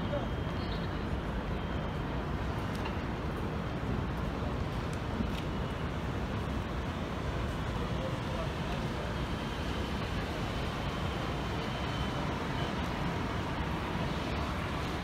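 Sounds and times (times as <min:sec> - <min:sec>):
people talking: 0:00.0 - 0:00.8, 0:07.7 - 0:13.4
road traffic rumble: 0:00.0 - 0:15.0.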